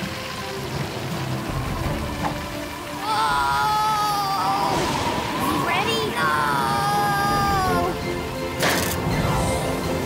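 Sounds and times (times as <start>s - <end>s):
background music: 0.0s - 10.0s
steady rain: 0.0s - 10.0s.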